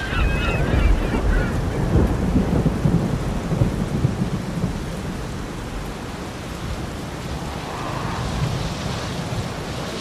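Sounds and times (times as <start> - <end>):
low thunder rumble: 0.0 - 10.0
rain hissing: 0.0 - 10.0.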